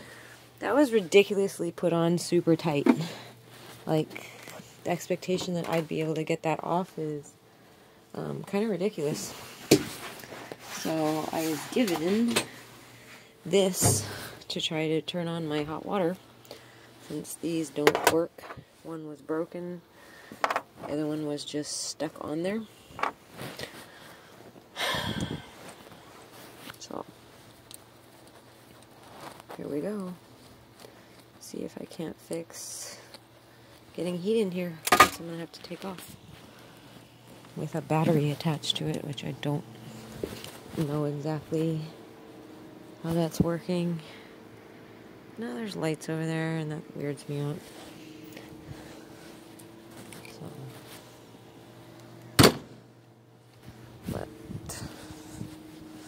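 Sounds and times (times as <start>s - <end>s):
steady low hum: 0.0s - 56.0s
rustling handling noises: 0.2s - 6.8s, 8.4s - 14.5s, 25.5s - 31.5s, 33.2s - 44.3s, 45.9s - 52.3s
person speaking: 0.6s - 7.3s, 10.7s - 12.5s, 37.5s - 42.0s, 43.0s - 44.3s, 45.3s - 49.0s, 50.0s - 51.1s.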